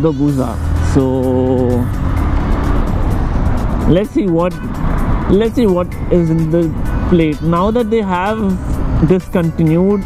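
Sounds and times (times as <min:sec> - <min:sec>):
motorcycle engine: 0:00.0 - 0:09.2
road and wind noise: 0:00.0 - 0:10.0.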